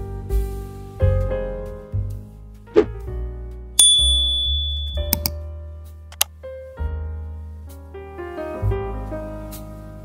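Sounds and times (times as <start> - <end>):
soft piano music: 0.0 - 2.1, 2.9 - 10.0
bright bell ding: 3.8 - 5.3.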